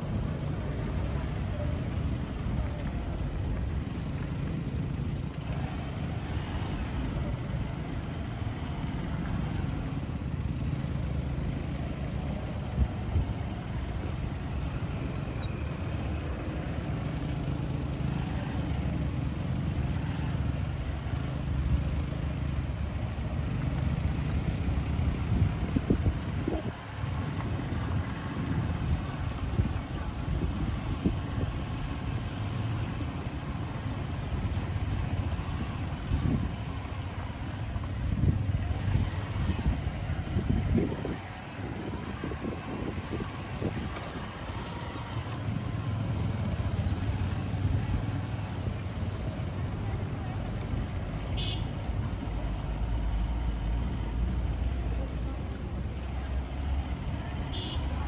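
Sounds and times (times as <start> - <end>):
truck and bus engines idling: 0.0 - 58.0.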